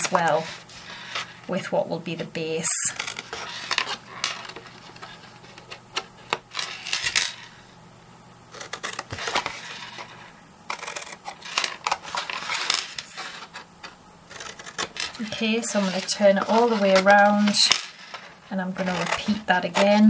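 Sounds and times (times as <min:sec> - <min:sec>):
card being handled: 0:08.5 - 0:20.0
scissors snipping cardstock: 0:10.7 - 0:12.2.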